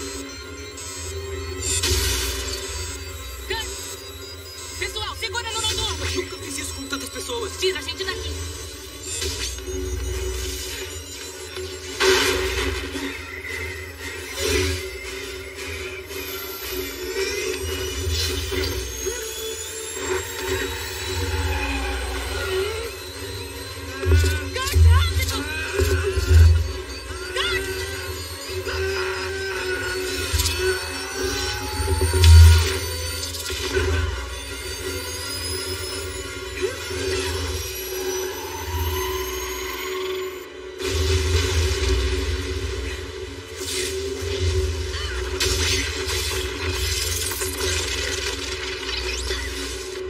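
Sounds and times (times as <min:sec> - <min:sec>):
action film score music: 0:00.0 - 0:50.0
crashing and shattering effects: 0:11.7 - 0:18.9, 0:40.8 - 0:50.0.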